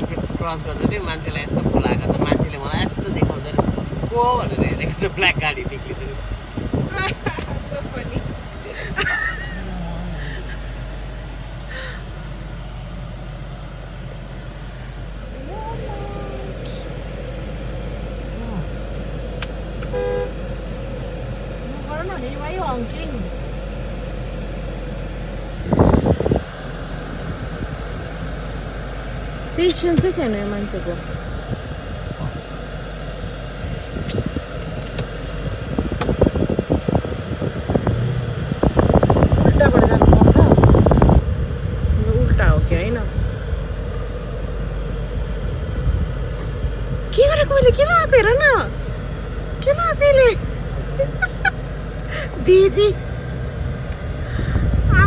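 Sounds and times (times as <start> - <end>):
car engine rumble inside cabin: 0.0 - 55.0.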